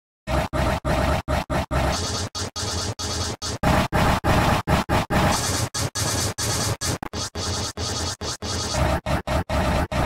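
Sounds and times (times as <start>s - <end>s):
distorted stuttering logo audio: 0.3s - 10.0s.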